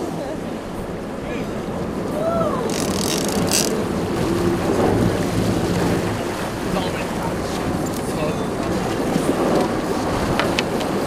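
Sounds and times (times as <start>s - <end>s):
sea wash: 0.0s - 11.0s
wind on microphone: 0.1s - 11.0s
boat engine humming: 1.5s - 11.0s
short bursts of noise: 2.7s - 3.8s.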